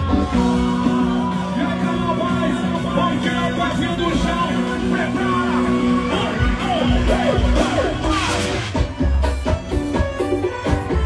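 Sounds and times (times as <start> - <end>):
person singing: 0.0 - 3.6
electric guitar: 0.0 - 11.0
live rock band playing: 0.0 - 11.0.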